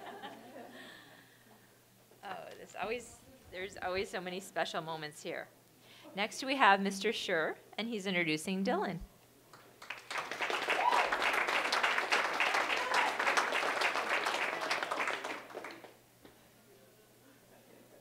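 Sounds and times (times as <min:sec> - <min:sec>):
audience applauding: 0:09.5 - 0:16.0.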